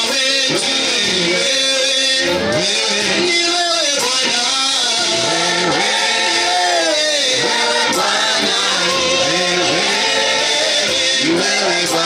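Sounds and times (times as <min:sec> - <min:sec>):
gospel choir singing: 0:00.0 - 0:12.0
man singing into microphone: 0:00.0 - 0:12.0.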